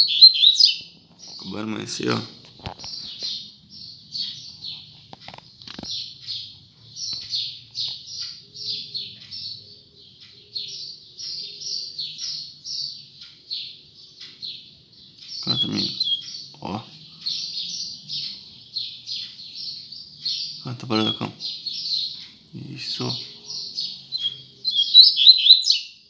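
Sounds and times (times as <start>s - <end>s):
bird singing high notes: 0.0s - 0.8s, 19.0s - 22.2s, 22.9s - 26.0s.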